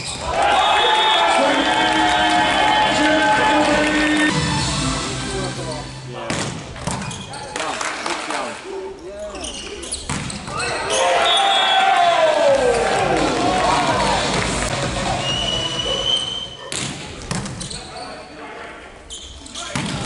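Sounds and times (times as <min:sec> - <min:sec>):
crowd voices: 0:00.0 - 0:06.8, 0:10.5 - 0:19.0
arena music: 0:01.4 - 0:06.2, 0:12.6 - 0:15.9.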